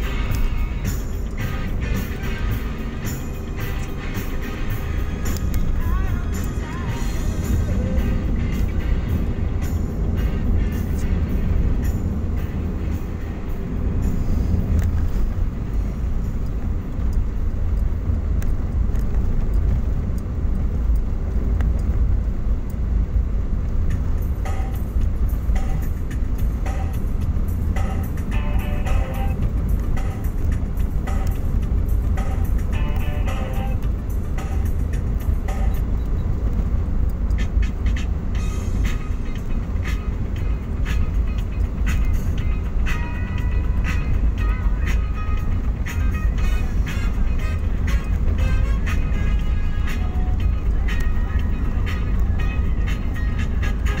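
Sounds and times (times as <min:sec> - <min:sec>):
car engine and tyres rumbling: 0:00.0 - 0:54.0
music playing: 0:00.0 - 0:54.0.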